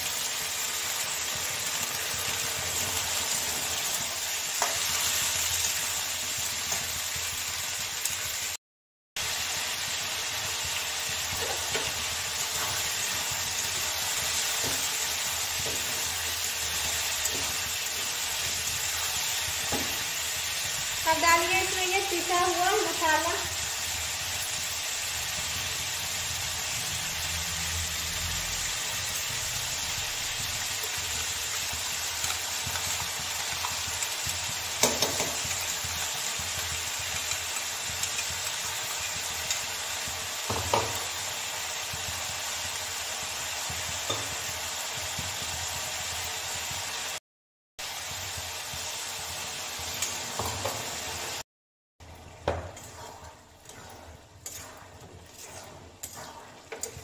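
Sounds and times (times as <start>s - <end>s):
paste sizzling in oil: 0.0s - 8.6s, 9.2s - 47.2s, 47.8s - 57.0s
scraping and clicking stirring: 52.2s - 57.0s.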